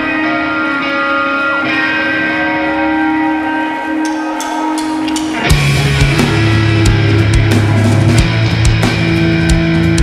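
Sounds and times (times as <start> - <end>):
electric guitar feedback drone: 0.0 - 10.0.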